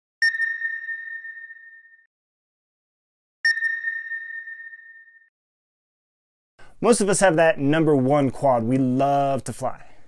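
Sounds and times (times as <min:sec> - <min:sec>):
radar sweep: 0:00.2 - 0:02.0, 0:03.5 - 0:05.3
sonar ping: 0:00.2 - 0:02.1, 0:03.4 - 0:05.3.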